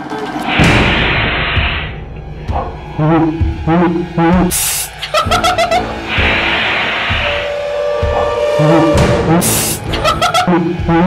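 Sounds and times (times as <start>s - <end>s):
aerosol spray hissing: 4.5s - 5.0s, 9.4s - 9.9s
music with held note: 7.1s - 11.0s.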